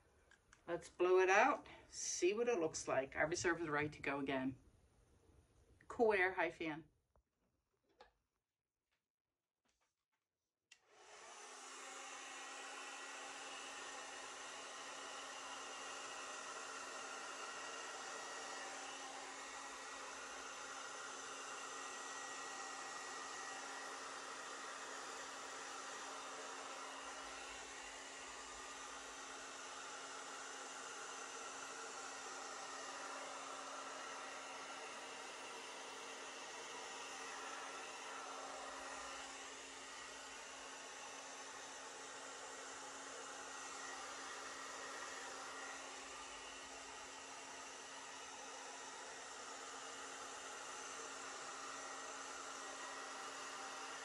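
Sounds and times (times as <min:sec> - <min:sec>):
hair dryer running: 0:10.7 - 0:54.0.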